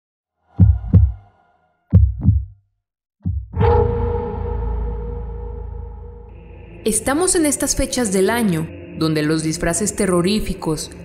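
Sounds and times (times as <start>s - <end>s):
heartbeat thumps: 0.6s - 1.3s, 1.9s - 2.6s, 3.2s - 3.6s
long ringing boom: 3.5s - 10.2s.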